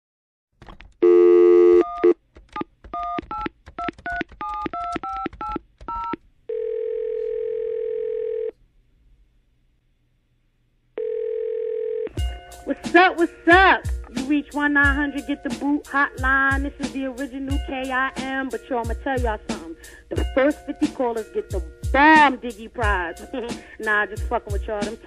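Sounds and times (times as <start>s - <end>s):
dial tone: 1.0s - 2.2s, 6.5s - 8.5s, 11.0s - 12.2s.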